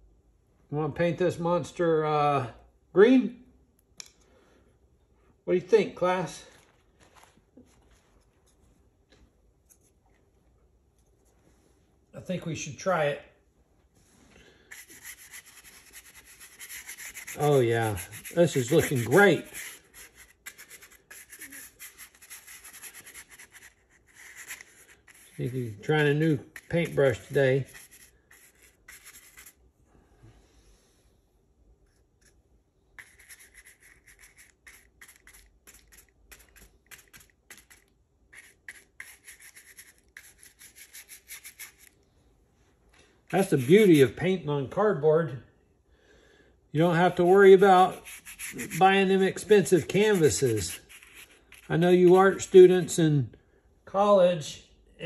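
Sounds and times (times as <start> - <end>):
paintbrush rubbing on cardboard: 14.7 - 29.6, 33.0 - 37.8, 38.4 - 41.9, 43.3 - 44.2, 47.2 - 52.9.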